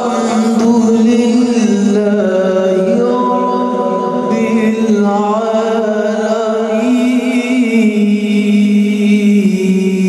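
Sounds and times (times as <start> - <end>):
man reciting melodically: 0.0 - 10.0.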